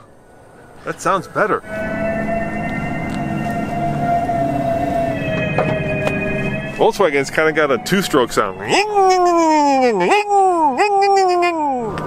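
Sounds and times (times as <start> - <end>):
synthetic hum of vehicle warning sound: 0.0 - 10.1.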